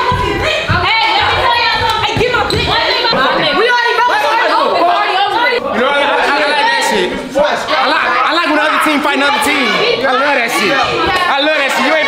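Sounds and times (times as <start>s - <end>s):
people shouting and talking: 0.0s - 12.0s.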